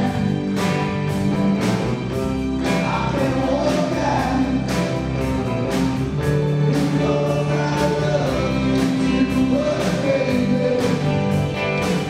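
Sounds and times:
live rock band playing: 0.0s - 12.0s
person singing: 2.6s - 5.2s, 6.5s - 12.0s.

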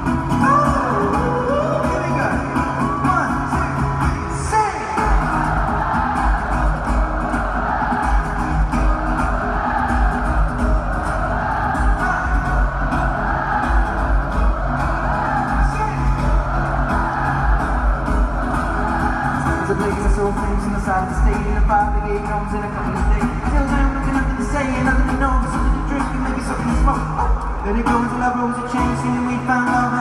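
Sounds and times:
crowd noise: 0.0s - 30.0s
live concert music: 0.0s - 30.0s.

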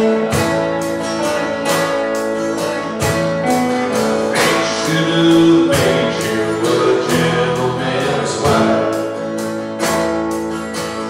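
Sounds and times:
drum and cymbal hits: 0.0s - 10.5s
live band playing: 0.0s - 11.0s.

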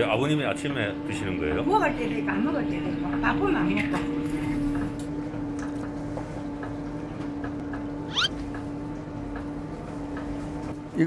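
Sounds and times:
short rising squeak: 8.1s - 8.4s.

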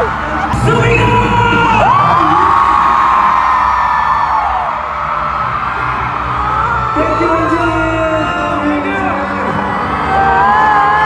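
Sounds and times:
backing music: 0.0s - 11.0s
crowd cheering and screaming: 0.0s - 11.0s.

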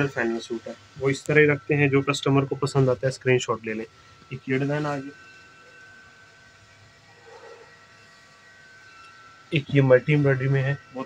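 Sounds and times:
faint hiss and hum: 0.0s - 11.0s
high whine: 0.0s - 11.0s.

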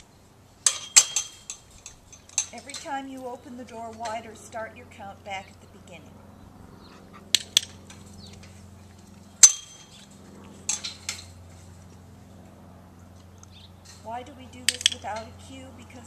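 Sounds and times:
gate ringing clank: 0.6s - 3.3s, 9.4s - 10.0s
metallic gate latch clicks: 14.6s - 15.4s.

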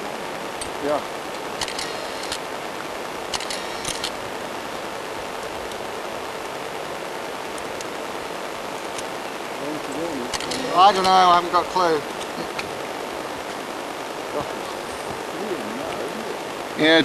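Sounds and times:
steady outdoor hiss: 0.0s - 17.0s
short clicks: 1.6s - 2.4s, 10.3s - 11.2s.

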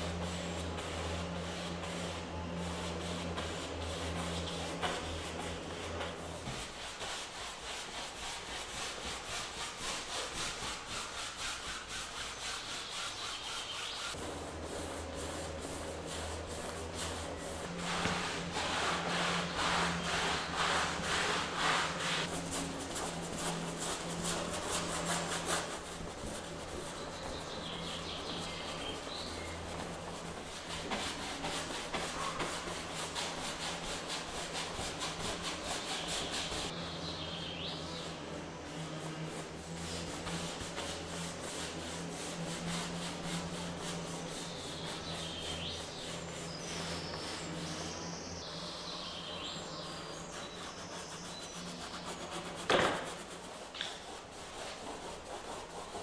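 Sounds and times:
brush scrubbing paint on canvas: 0.0s - 48.3s, 49.0s - 56.0s.

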